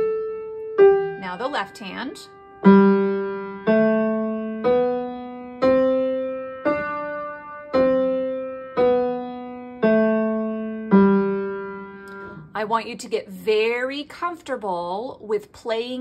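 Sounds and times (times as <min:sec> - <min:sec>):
piano notes: 0:00.0 - 0:12.8.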